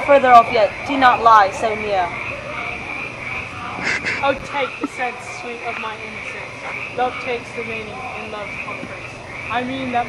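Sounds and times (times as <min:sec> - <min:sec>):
frogs calling: 0:00.0 - 0:10.0
person laughing: 0:03.8 - 0:05.0.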